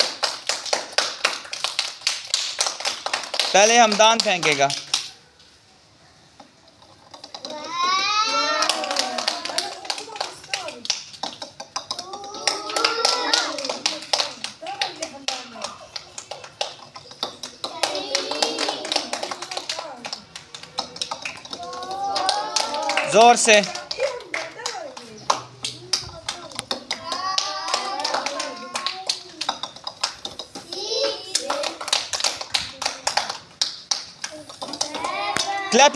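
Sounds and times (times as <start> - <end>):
hand claps: 0.0 - 5.2, 7.4 - 35.9
children calling out excitedly: 7.3 - 10.5, 11.9 - 16.2, 17.3 - 24.2, 25.6 - 29.8, 30.5 - 33.4, 34.3 - 35.9.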